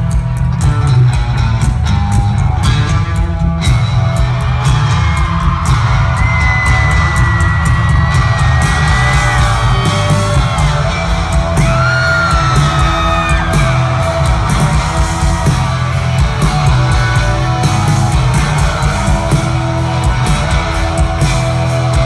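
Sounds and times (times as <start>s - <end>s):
loud rock band playing: 0.0s - 22.0s.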